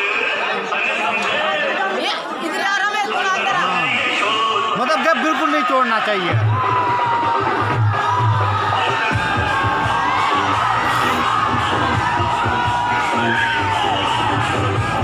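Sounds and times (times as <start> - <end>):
crowd cheering: 0.0 - 15.0
loud music with strong bass: 6.3 - 15.0
children shouting: 6.4 - 15.0.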